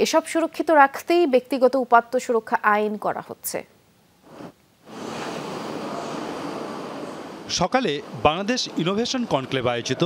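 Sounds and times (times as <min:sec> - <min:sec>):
conference hall background noise: 0:04.2 - 0:10.0.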